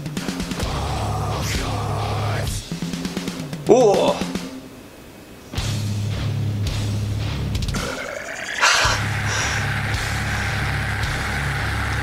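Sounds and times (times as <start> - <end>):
heavy metal music: 0.0 - 3.6, 5.6 - 12.0.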